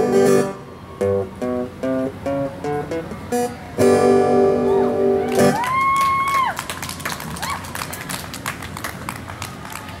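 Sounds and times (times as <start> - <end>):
scattered hand clapping: 5.3 - 10.0.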